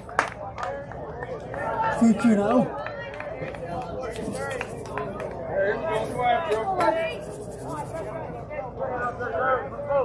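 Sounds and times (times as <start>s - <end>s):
indistinct talking: 0.0s - 10.0s
low outdoor background: 0.0s - 10.0s.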